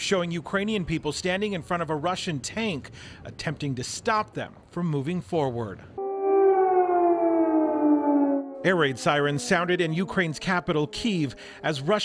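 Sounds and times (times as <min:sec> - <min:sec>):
air raid siren gliding down: 0:06.0 - 0:12.0.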